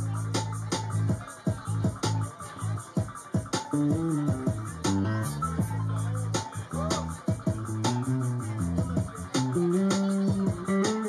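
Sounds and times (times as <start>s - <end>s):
bass guitar: 0.0s - 2.8s, 3.6s - 11.0s
quick steady beat: 0.0s - 11.0s.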